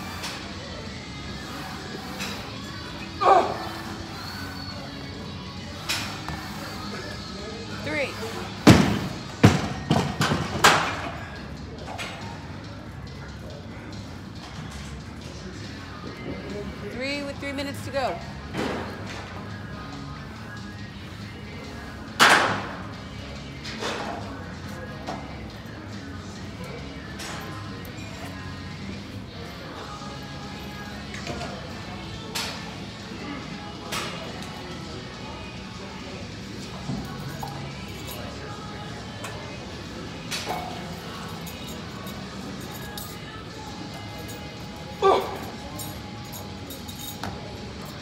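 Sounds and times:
background music: 0:00.0 - 0:48.0.

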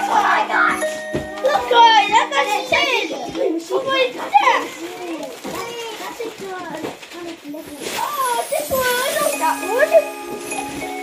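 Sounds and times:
children chattering: 0:00.0 - 0:11.0
wrapping paper rustling and tearing: 0:03.3 - 0:11.0.

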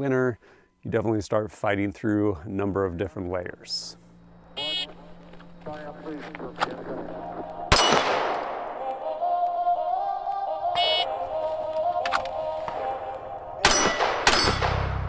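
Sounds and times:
pistol shots: 0:06.6 - 0:09.0, 0:13.6 - 0:15.0.

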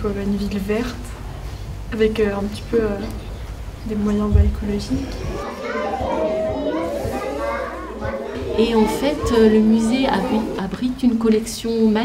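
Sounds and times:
chatter of overlapping voices: 0:02.2 - 0:12.0.

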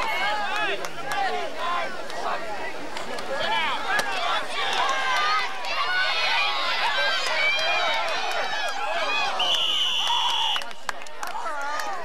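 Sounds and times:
spectators shouting and cheering: 0:00.0 - 0:12.0.

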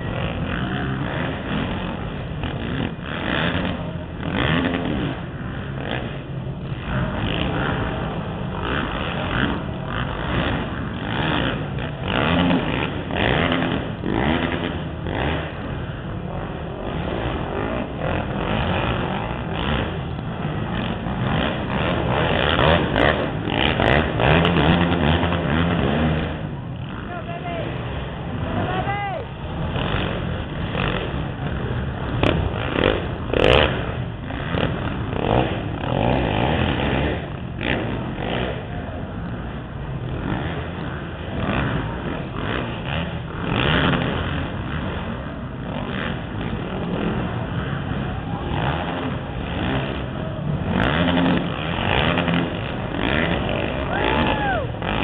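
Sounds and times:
quad engines revving: 0:00.0 - 0:55.0
indistinct voices: 0:27.0 - 0:29.6, 0:53.3 - 0:54.9.

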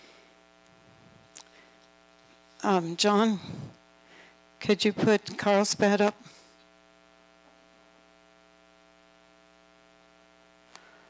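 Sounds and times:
mains hum: 0:00.0 - 0:11.0.

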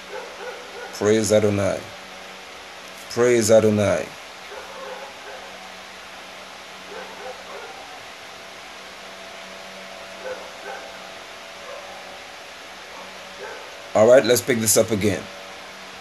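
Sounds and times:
steady hiss: 0:00.0 - 0:16.0.

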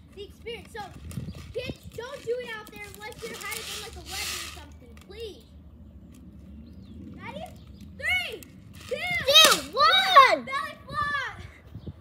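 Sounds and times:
child calling out: 0:08.9 - 0:11.5.

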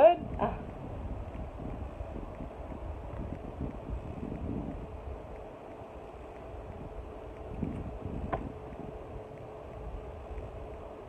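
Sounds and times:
faint steady hum: 0:00.0 - 0:11.0
low rumbling background noise: 0:00.0 - 0:11.0.

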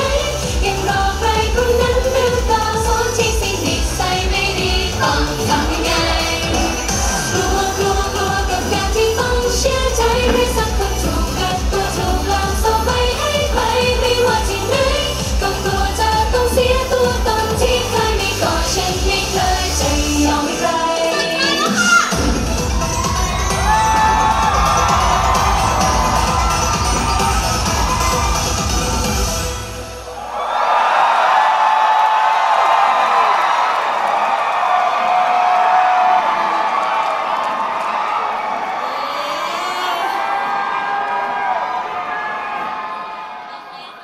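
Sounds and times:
pop music with heavy beat: 0:00.0 - 0:29.8
crowd cheering and shouting: 0:00.0 - 0:44.0.

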